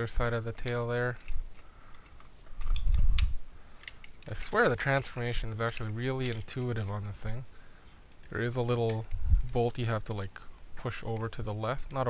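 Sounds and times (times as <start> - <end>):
sharp plastic clicks: 0.6 - 7.0, 8.1 - 9.6.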